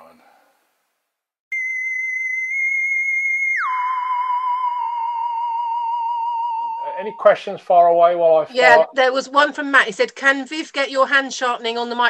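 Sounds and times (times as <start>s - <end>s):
electronic tone sliding down: 1.5s - 8.1s.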